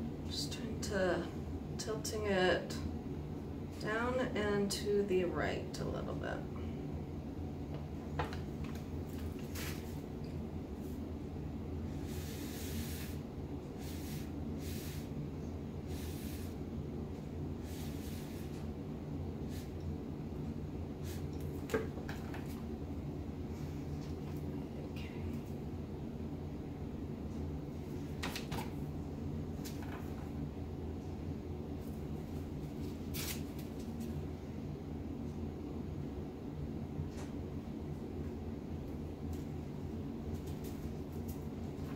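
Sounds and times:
paper towel rustling: 9.0 - 10.0.

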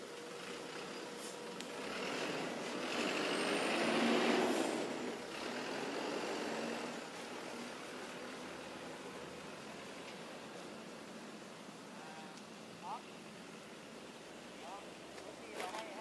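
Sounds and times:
motor vehicle passing: 0.0 - 11.4.

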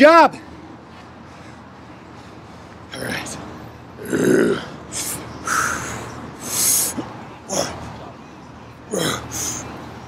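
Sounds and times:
man breathing and grunting with effort: 1.1 - 8.2, 8.8 - 9.8.

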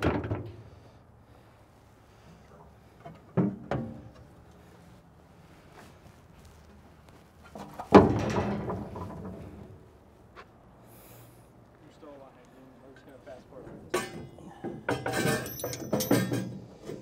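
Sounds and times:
sharp metal clanks: 13.9 - 17.0.

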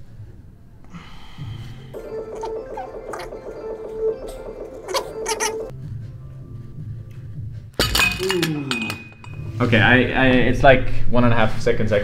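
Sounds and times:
background music held tone: 1.3 - 12.0
weight plates clattering: 7.8 - 9.4.

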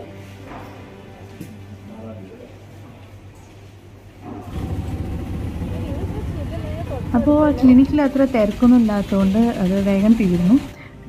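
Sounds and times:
vehicle and road rumble: 4.5 - 10.0.

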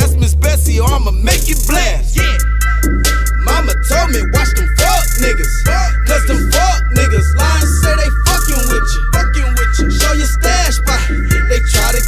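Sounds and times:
deep booming bass: 0.0 - 12.0
hi-hat ticks: 0.0 - 12.0
man rapping: 0.0 - 12.0
high steady chord: 1.6 - 12.0.

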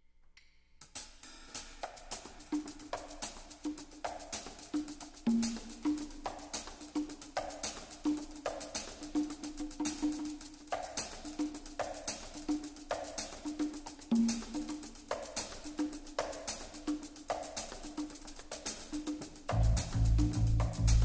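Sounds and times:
conga drums: 0.8 - 21.0
shaker: 0.8 - 21.0.

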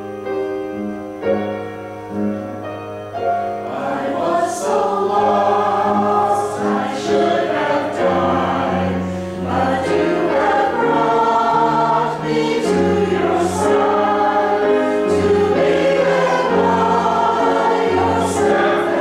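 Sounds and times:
mixed choir singing: 3.6 - 19.0.

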